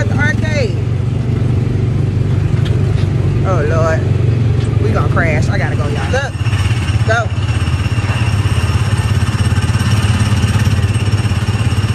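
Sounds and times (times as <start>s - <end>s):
small gasoline engine running: 0.0s - 11.9s.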